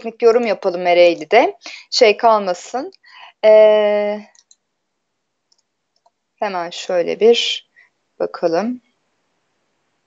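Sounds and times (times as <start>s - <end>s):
faint small clicks: 4.3s - 4.7s, 5.5s - 6.2s.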